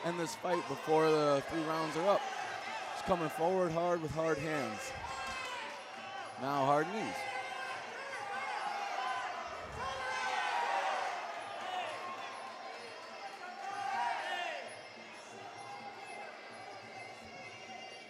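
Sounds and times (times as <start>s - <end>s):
people shouting: 4.4s - 17.9s.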